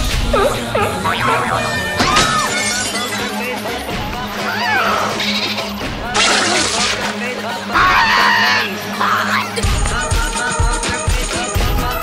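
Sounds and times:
seagull squawking: 0.2s - 2.8s.

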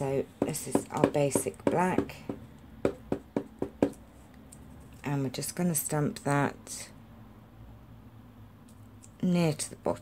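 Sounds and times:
rubber stamp tapping ink pad: 0.4s - 4.0s.

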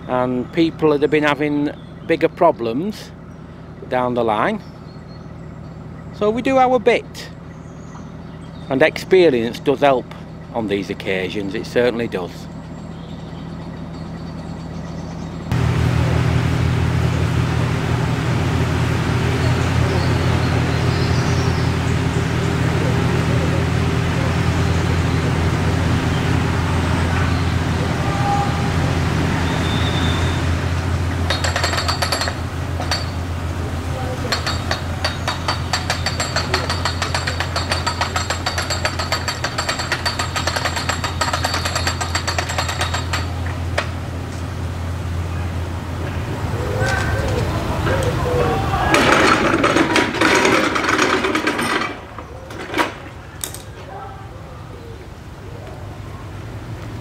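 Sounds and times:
diesel engine drone: 0.0s - 57.0s
fast rattling clatter: 31.2s - 33.2s, 34.0s - 43.6s, 48.9s - 53.2s.

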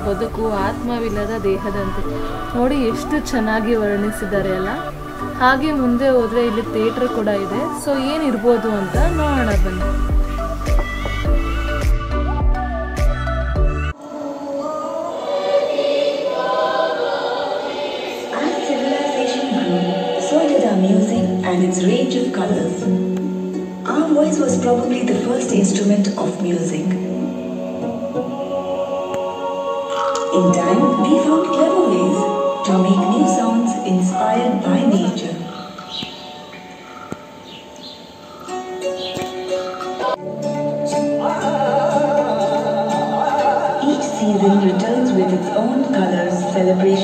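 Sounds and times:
choir singing long held notes: 0.0s - 22.6s, 26.2s - 47.0s
birds chirping: 35.5s - 40.1s.

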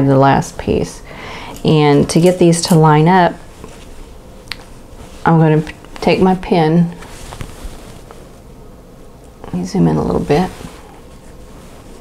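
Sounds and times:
fabric rustle: 1.8s - 8.6s, 9.6s - 12.0s.

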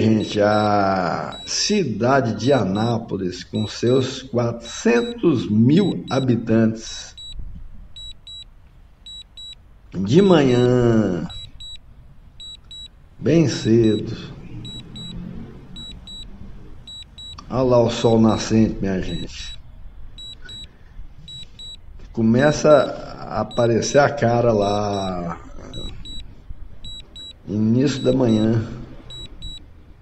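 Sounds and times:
short high double beeps: 0.0s - 1.7s, 3.6s - 6.4s, 7.2s - 7.4s, 11.3s - 11.8s, 13.5s - 15.2s, 15.8s - 16.3s, 16.9s - 17.5s, 20.2s - 20.7s, 23.5s - 26.2s, 26.8s - 29.6s.

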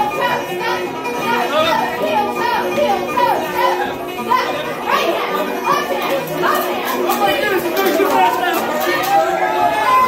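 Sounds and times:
children's voices: 0.0s - 10.0s
lively chatter: 0.0s - 10.0s
polka dance music: 0.0s - 10.0s.

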